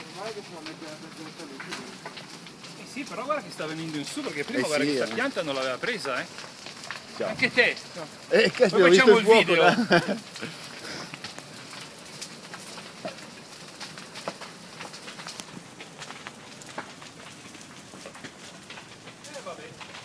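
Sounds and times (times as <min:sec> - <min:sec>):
faint hiss: 0:00.0 - 0:17.7
fire crackling and snapping: 0:00.0 - 0:20.0.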